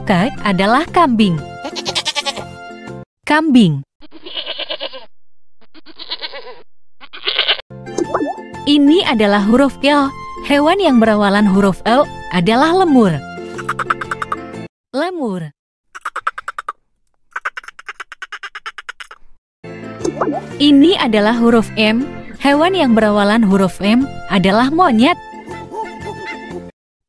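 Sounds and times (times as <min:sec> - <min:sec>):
goat bleating: 0:01.6 - 0:02.6, 0:04.0 - 0:05.1, 0:05.7 - 0:07.6
lemur chattering calls: 0:16.0 - 0:19.3.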